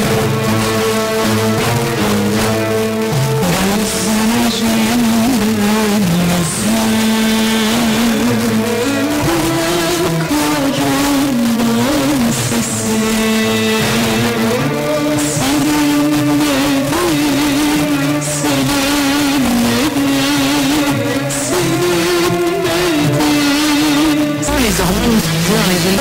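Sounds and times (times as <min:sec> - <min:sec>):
music over car radio: 0:02.8 - 0:26.0.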